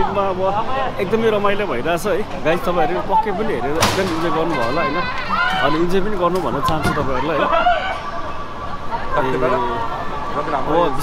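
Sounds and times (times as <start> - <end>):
busy street noise: 0.0 - 11.0
voices talking: 0.0 - 11.0.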